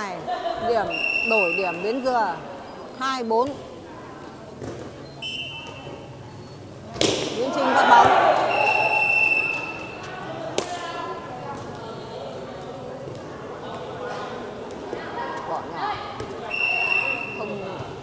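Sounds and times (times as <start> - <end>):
hubbub of voices: 0.0 - 18.0
referee's whistle blasts: 0.9 - 2.0, 5.2 - 6.0, 8.4 - 10.0, 16.4 - 17.7
ball strike: 6.9 - 7.4.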